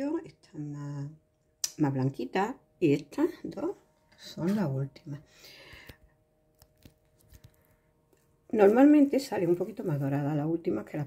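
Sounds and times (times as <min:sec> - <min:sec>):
person speaking: 0:02.8 - 0:05.9, 0:08.5 - 0:11.0
soft breath: 0:05.2 - 0:06.1.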